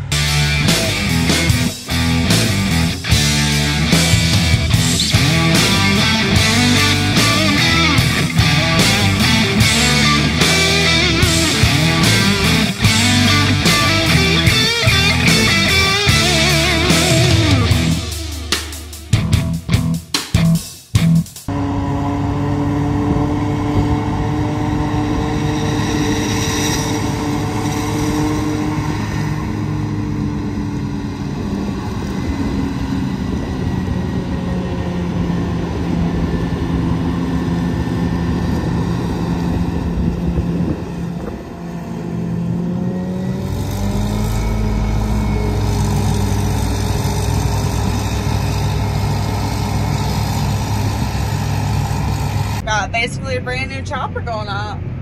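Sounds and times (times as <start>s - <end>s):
deep engine rumble: 0.0s - 55.0s
truck engine running: 0.0s - 55.0s
forage harvester chopping corn: 37.1s - 52.6s.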